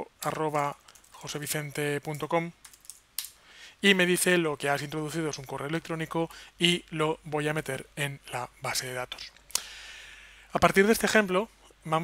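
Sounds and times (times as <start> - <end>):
man talking: 0.0 - 2.6, 3.8 - 9.4, 10.5 - 12.0.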